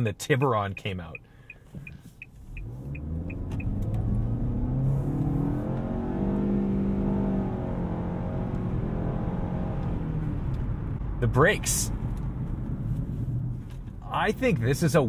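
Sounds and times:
turn signal ticking: 0.0 - 11.2
car engine accelerating: 1.8 - 14.7.

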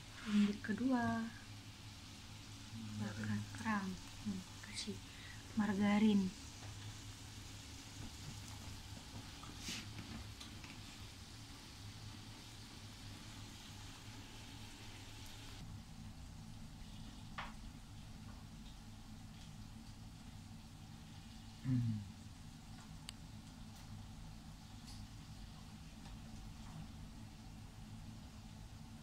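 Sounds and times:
food sizzling on a grill plate: 0.1 - 15.6.

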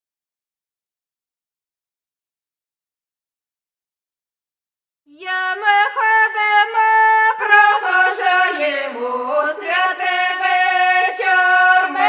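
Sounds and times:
lower voice singing: 5.1 - 12.0.

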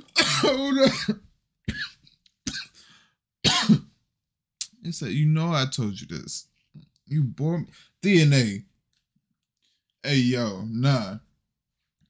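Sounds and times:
man coughing: 0.0 - 2.9, 3.5 - 3.9.

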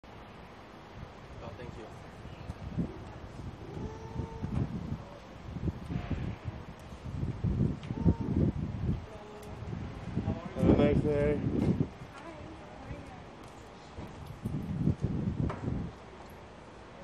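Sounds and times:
wind rumbling on microphone: 0.9 - 17.0
low bumps: 14.0 - 16.0.

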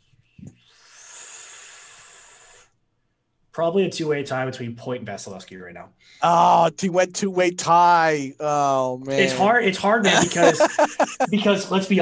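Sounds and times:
breathy exhale into microphone: 0.5 - 2.8.

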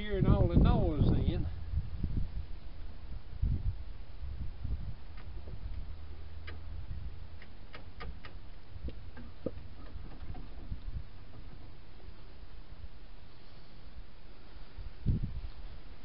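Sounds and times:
low rumble: 0.0 - 7.7.

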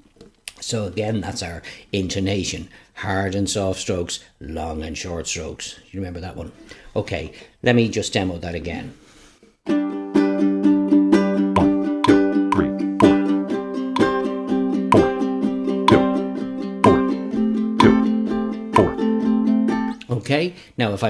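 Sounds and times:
ukulele strumming: 9.7 - 20.0
drum and bass backing track: 11.6 - 13.2, 16.8 - 17.1, 17.8 - 18.1, 18.8 - 19.0.

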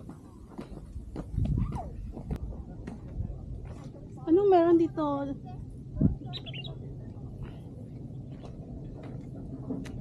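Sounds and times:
footsteps on concrete: 0.0 - 3.9
wind gust on microphone: 5.8 - 6.7.

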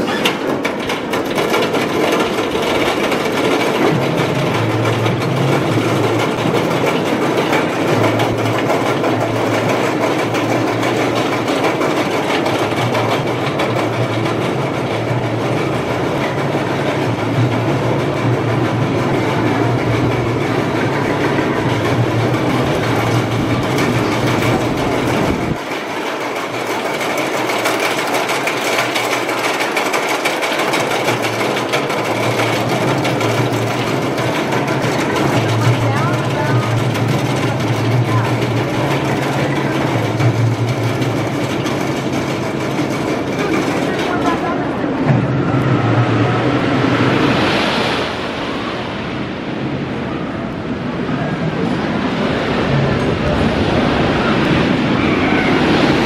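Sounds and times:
roller coaster train rumbling: 0.0 - 56.0.

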